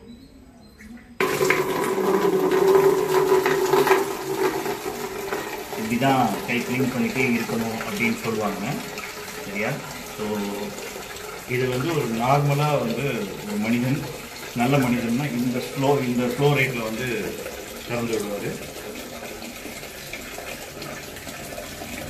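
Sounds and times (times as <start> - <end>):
hands washing under water: 1.2 - 22.0
water splashing into plastic bucket: 1.2 - 22.0
water tap turned on: 1.2 - 22.0.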